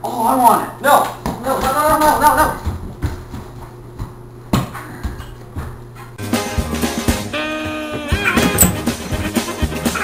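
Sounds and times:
footsteps running through hallway: 1.2 - 6.2.

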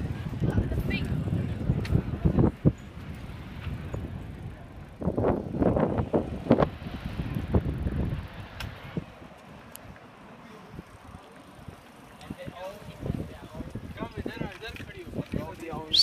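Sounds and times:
passers-by's voices: 0.0 - 16.0
wind buffeting microphone: 0.0 - 16.0.

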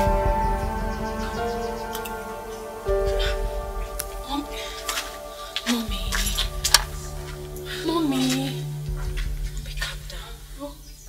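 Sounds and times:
voice gliding in pitch: 0.0 - 10.7
film music of held tones: 0.0 - 11.0.

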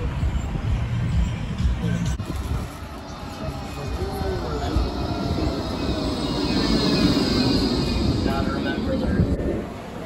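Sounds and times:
tram high whine: 0.0 - 10.0
tram wheels rumbling on rails: 0.0 - 10.0.

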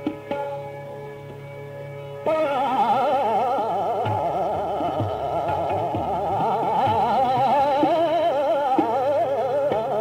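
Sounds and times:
low tabla strokes: 0.0 - 10.0
man singing classical vocal: 2.3 - 10.0.

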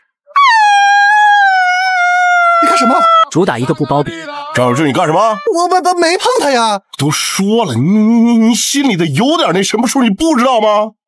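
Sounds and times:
woman's high-pitched cry: 0.3 - 5.6
man's voice: 2.6 - 11.0.

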